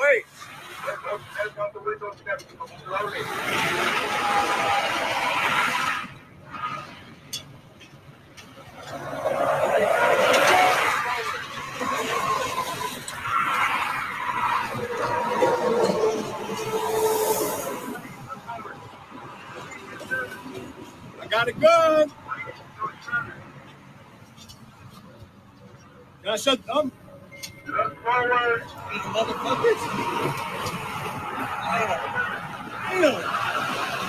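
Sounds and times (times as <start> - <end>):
highway traffic noise: 0.0 - 34.0.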